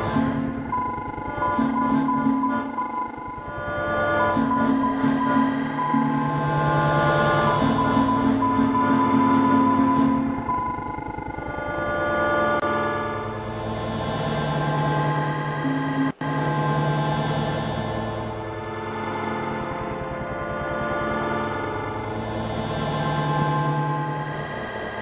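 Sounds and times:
dense cloud of steady tones: 0:00.0 - 0:25.0.

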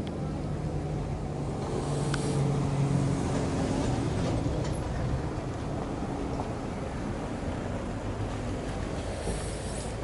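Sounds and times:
vehicle engine humming: 0:00.0 - 0:10.0.

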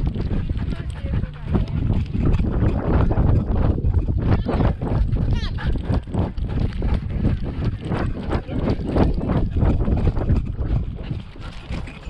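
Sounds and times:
dog paws thudding on dirt: 0:00.0 - 0:12.0.

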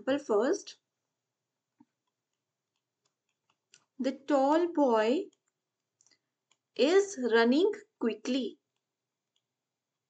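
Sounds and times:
stylus ticking on tablet: 0:01.8 - 0:04.0, 0:05.2 - 0:06.8, 0:08.6 - 0:09.6.

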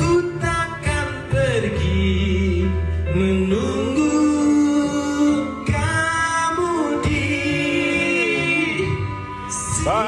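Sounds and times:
men singing slow song: 0:00.0 - 0:10.0.

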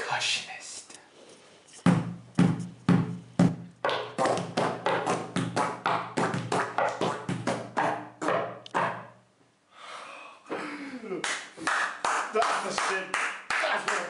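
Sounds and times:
hands drumming on wooden table: 0:01.9 - 0:09.2.

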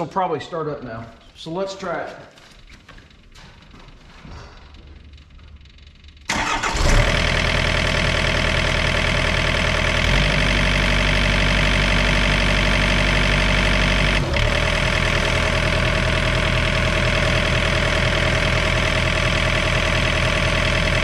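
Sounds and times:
diesel engine starting and idling: 0:05.5 - 0:21.0.

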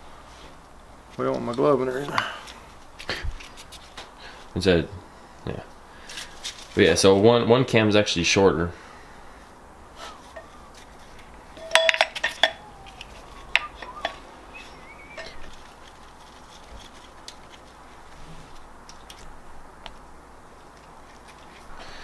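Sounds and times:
metal clinks and taps: 0:11.6 - 0:14.2.

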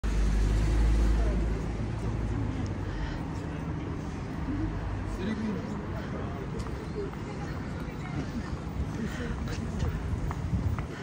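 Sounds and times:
traffic noise: 0:00.0 - 0:11.0
voices of passers-by: 0:00.0 - 0:11.0.

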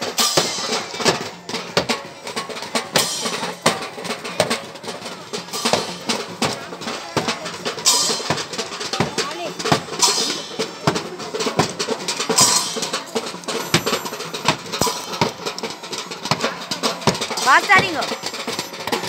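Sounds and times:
crowd voices: 0:00.0 - 0:19.0
drum band playing: 0:00.0 - 0:19.0
cymbal crashes: 0:07.8 - 0:08.5, 0:10.0 - 0:11.0, 0:12.2 - 0:17.4.

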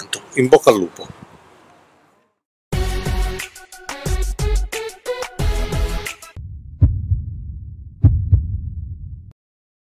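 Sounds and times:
deep double thump: 0:06.4 - 0:09.3
low bass hum: 0:06.4 - 0:09.4.

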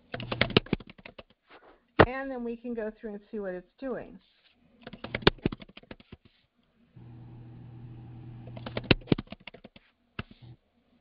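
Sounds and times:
typing on computer keyboard: 0:00.0 - 0:01.3, 0:04.8 - 0:06.2, 0:08.5 - 0:10.3.

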